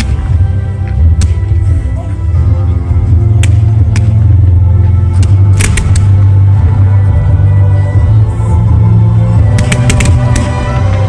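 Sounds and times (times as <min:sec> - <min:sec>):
loud music with heavy bass: 0:00.0 - 0:11.0
fireworks cracking: 0:05.2 - 0:06.3, 0:09.5 - 0:11.0.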